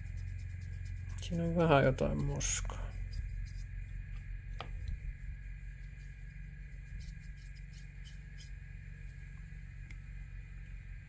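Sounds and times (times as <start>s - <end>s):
faint whine: 0.0s - 11.0s
low background hum: 0.0s - 11.0s.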